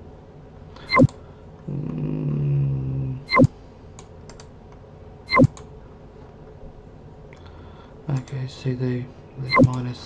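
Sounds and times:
keyboard and mouse clicks: 0.9s - 1.2s, 3.3s - 3.5s, 4.3s - 4.5s, 5.3s - 5.7s, 9.5s - 9.8s.

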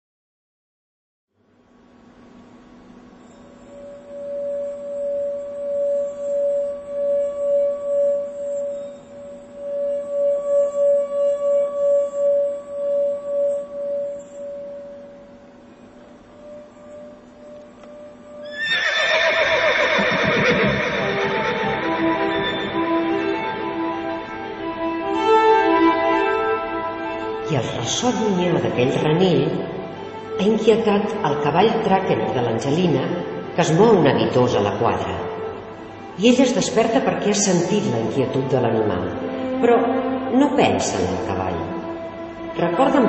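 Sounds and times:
singing wine glass ringing: 3.2s - 15.4s
horse neighing: 18.4s - 22.8s
string music: 18.5s - 43.0s.

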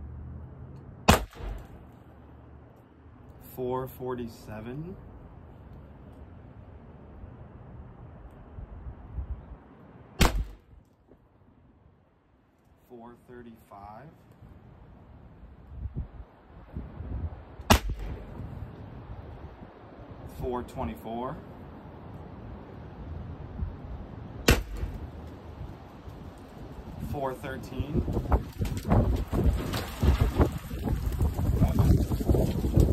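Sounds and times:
pistol shot pop: 1.1s - 1.8s, 10.2s - 10.6s, 17.6s - 18.3s, 24.5s - 25.0s.

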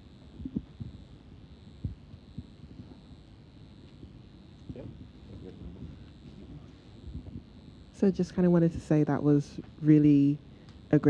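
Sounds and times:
faint high whine: 0.0s - 11.0s
soft low thumps: 0.3s - 3.0s, 4.0s - 7.9s.

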